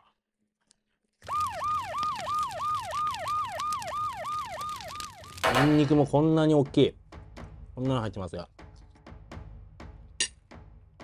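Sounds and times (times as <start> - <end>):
wailing siren sound effect: 1.2 - 5.8.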